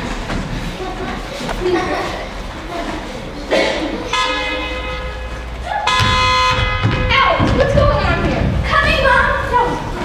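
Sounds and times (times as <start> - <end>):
steady horn-like tones: 3.2 - 10.0.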